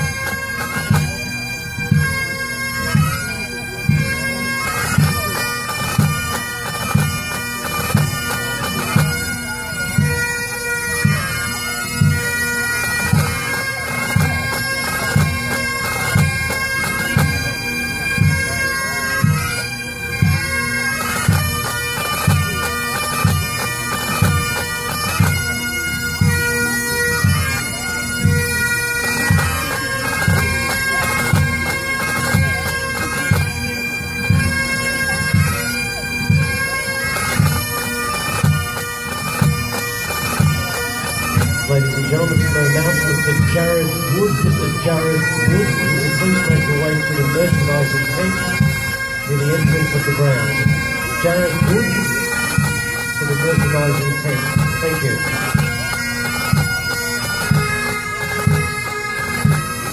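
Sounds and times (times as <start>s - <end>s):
bagpipes playing: 0.0s - 59.9s.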